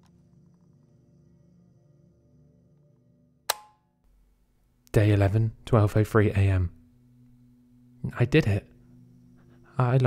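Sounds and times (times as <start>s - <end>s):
faint ambient music drone: 0.0s - 10.0s
sharp click with ring: 3.5s - 3.8s.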